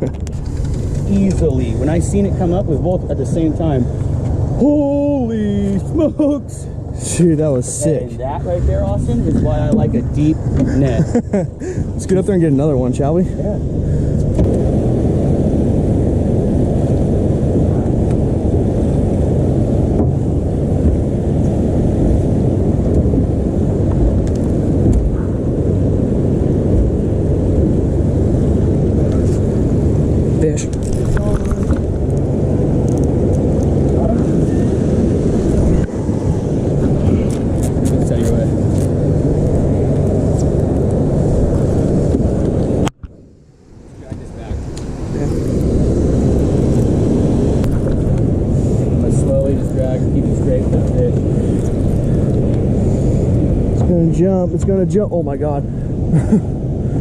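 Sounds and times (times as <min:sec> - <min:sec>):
outboard motor running: 0:00.0 - 0:43.4.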